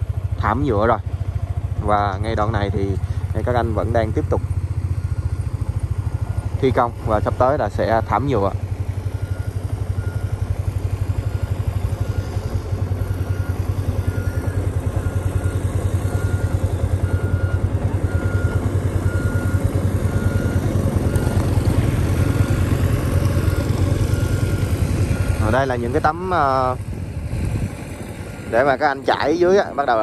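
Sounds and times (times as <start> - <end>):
motorbike engine running: 0.0 - 30.0
faint high beep: 11.2 - 21.6.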